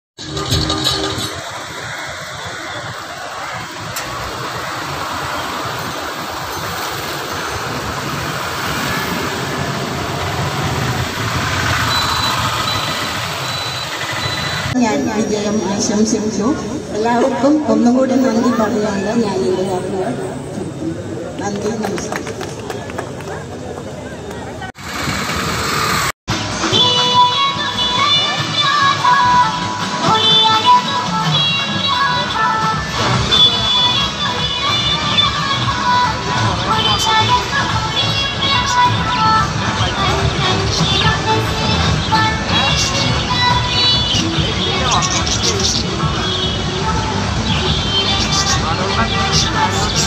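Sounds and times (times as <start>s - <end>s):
vehicle rumble: 0.2s - 27.0s
street traffic: 0.2s - 50.0s
person speaking over a crowd: 21.3s - 23.5s.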